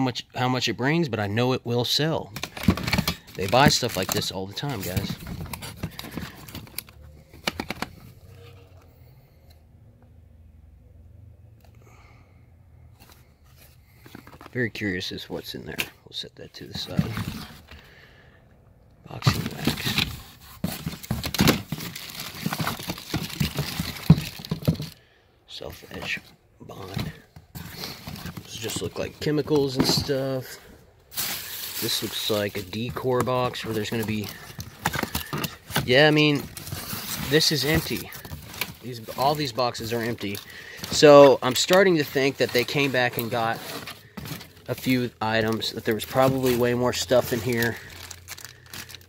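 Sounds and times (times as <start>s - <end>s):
plastic bags crinkling: 2.3s - 6.8s, 19.2s - 25.0s, 25.8s - 49.0s
cardboard boxes rustling: 2.3s - 8.1s, 13.0s - 15.5s, 16.6s - 17.8s, 19.1s - 25.0s, 25.6s - 49.0s
plastic bottles and boxes knocking: 20.7s - 25.0s.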